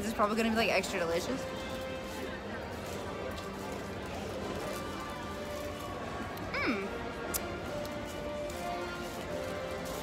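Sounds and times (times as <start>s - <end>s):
faint voices: 0.0s - 10.0s
quiet background music: 0.0s - 10.0s.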